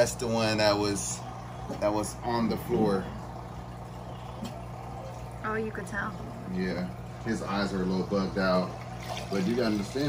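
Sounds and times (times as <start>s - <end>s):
aquarium pump humming: 0.0s - 10.0s
moving water and bubbles: 0.0s - 10.0s.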